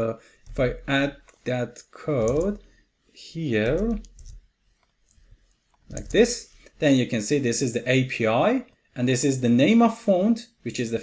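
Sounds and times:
computer keyboard clicks: 2.2 - 2.6, 3.6 - 4.4, 5.9 - 6.3.

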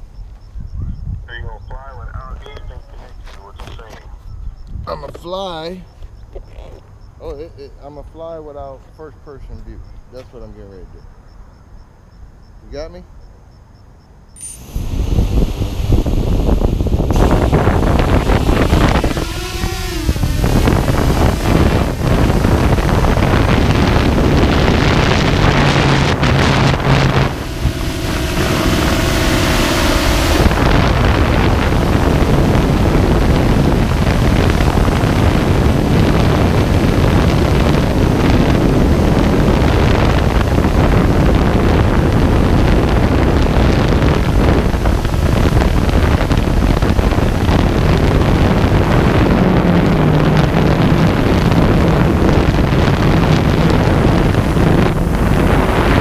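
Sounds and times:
wind buffeting microphone: 0.0 - 8.4, 14.6 - 56.0
drone motors and propellers: 14.4 - 56.0.

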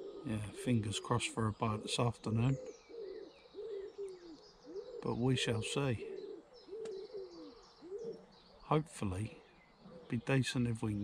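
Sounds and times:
pigeon cooing: 0.0 - 11.0
small birds chirping: 0.0 - 11.0.

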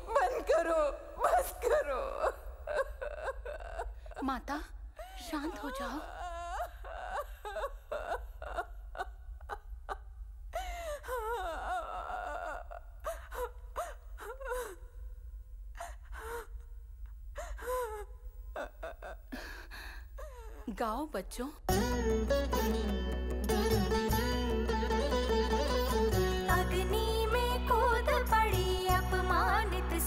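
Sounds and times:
woman weeping and sobbing: 0.0 - 20.8.

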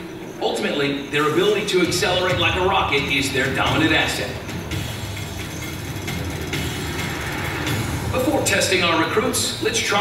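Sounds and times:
documentary soundtrack over loudspeakers: 0.0 - 10.0
narration voice: 0.4 - 4.6, 8.0 - 10.0.

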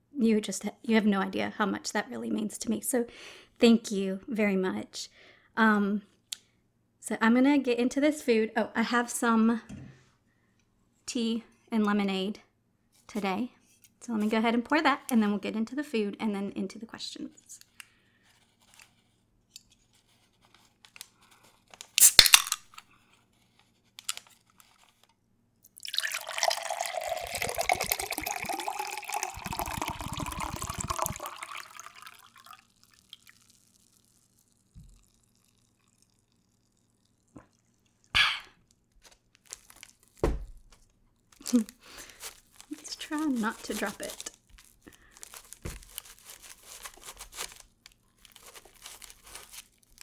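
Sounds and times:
drink can cracked open: 21.9 - 22.8
drink pouring into glass: 25.7 - 37.8.

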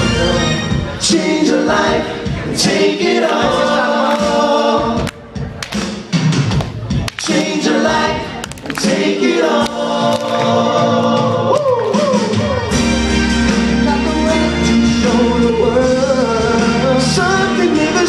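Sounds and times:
men singing in harmony: 0.0 - 5.1, 7.2 - 18.0.

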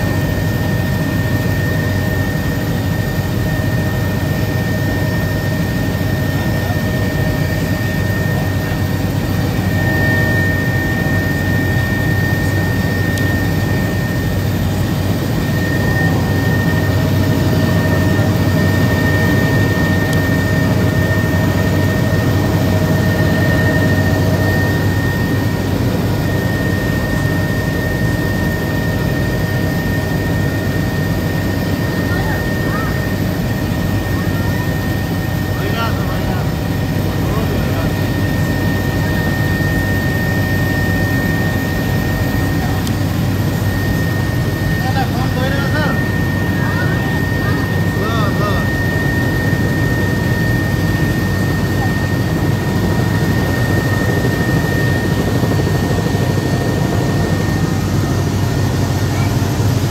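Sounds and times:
helicopter engine and rotor drone: 0.0 - 59.9.

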